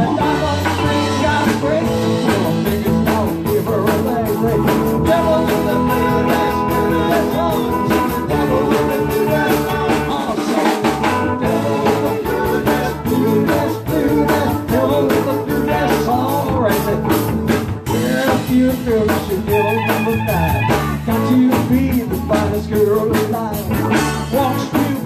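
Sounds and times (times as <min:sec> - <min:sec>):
drum kit: 0:00.0 - 0:25.0
electric guitars: 0:00.0 - 0:25.0
keyboard: 0:00.0 - 0:25.0.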